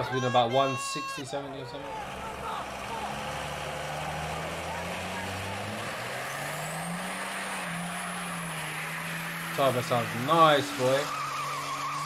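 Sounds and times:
diesel engine revving high: 0:01.3 - 0:12.0.

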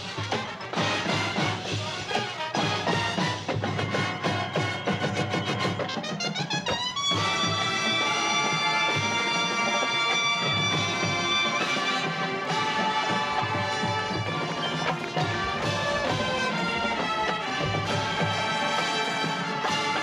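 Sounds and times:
marching band brass and drums: 0:00.0 - 0:20.0.

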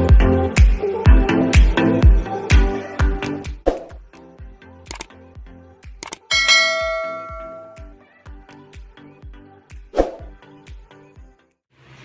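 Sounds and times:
background music with steady beat: 0:00.0 - 0:11.5
bright bell ding: 0:06.3 - 0:07.9.

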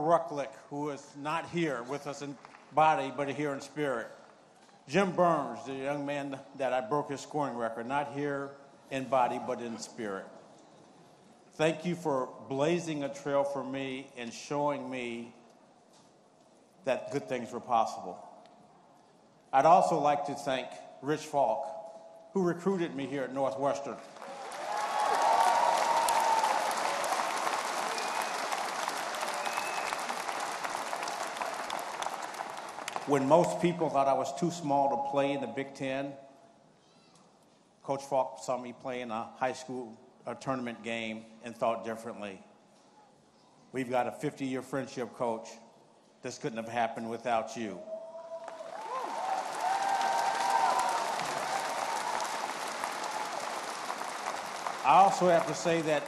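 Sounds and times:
crowd applauding: 0:24.0 - 0:33.7, 0:48.2 - 0:56.0.

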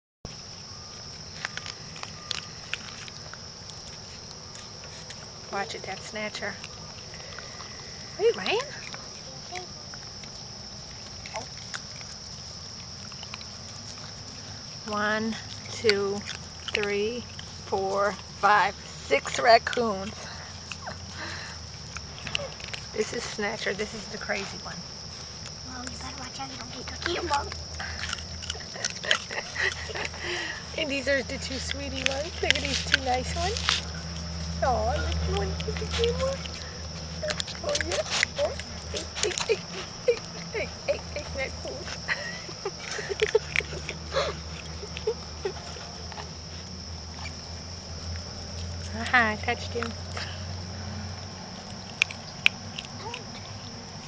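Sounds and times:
insects trilling: 0:00.3 - 0:54.0
raccoons snuffling and chewing: 0:00.3 - 0:54.0.

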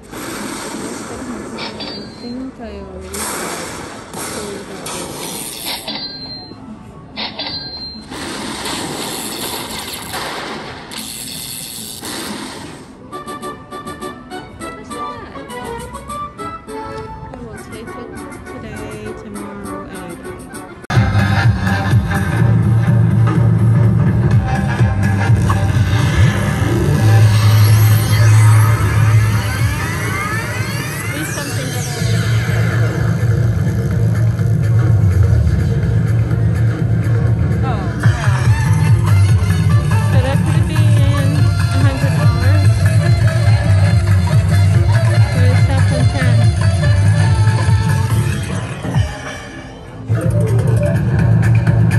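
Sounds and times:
electronic game music: 0:20.9 - 0:33.8, 0:38.0 - 0:51.9
deep steady bass: 0:20.9 - 0:49.1, 0:50.1 - 0:51.9
rising sweeps: 0:24.3 - 0:33.0
slot machine celebration music: 0:50.1 - 0:51.5
rapid count-up effects: 0:50.1 - 0:51.9.

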